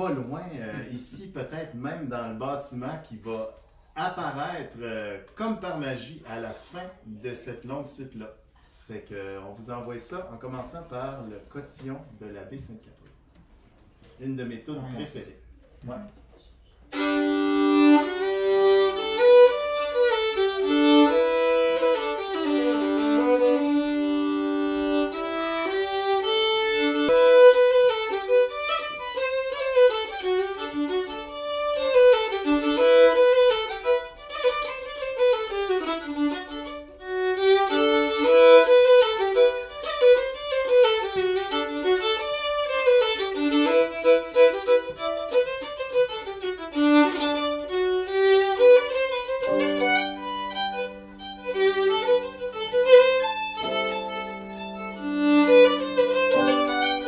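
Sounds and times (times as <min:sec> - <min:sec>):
fiddle playing quick melody: 0:16.9 - 0:57.0.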